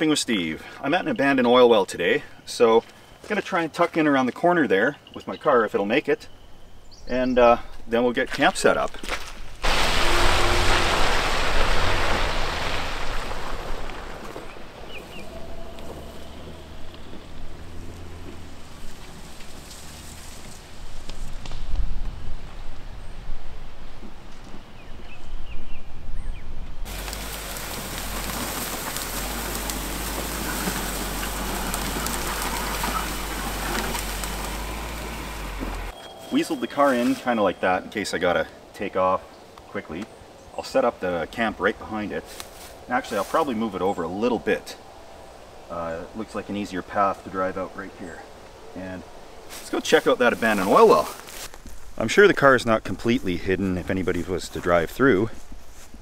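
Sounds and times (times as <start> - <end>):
tyres rolling over rough ground: 8.3 - 21.5, 26.9 - 36.0
low engine hum: 9.6 - 21.3, 26.9 - 36.0
car engine running: 15.0 - 20.5, 26.9 - 35.9.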